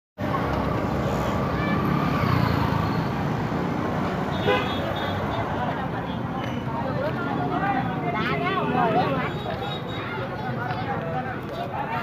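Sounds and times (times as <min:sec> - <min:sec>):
crowd voices: 0:00.2 - 0:12.0.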